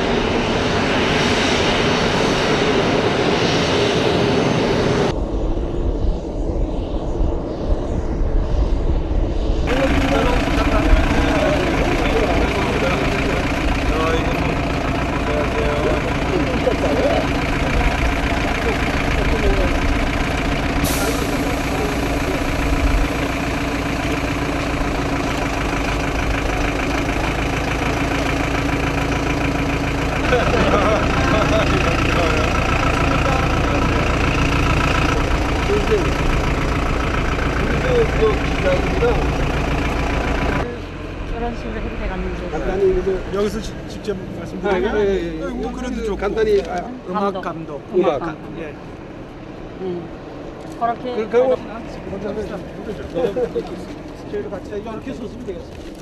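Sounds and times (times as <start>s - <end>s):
engine running: 0.0s - 56.0s
indistinct voices: 9.7s - 48.8s.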